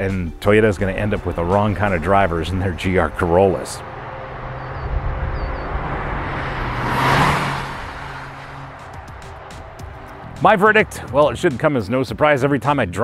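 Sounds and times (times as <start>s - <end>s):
engine and tyre noise: 0.0s - 12.6s
car driving past: 1.2s - 11.2s.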